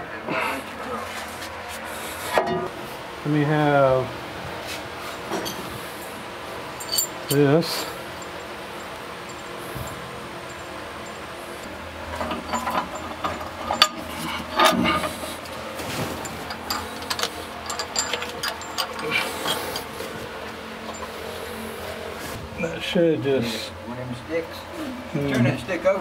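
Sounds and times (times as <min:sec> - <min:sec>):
steady low hum: 0:00.0 - 0:26.0
metallic clinks of bolts: 0:06.8 - 0:07.6, 0:12.2 - 0:15.0, 0:16.2 - 0:19.9.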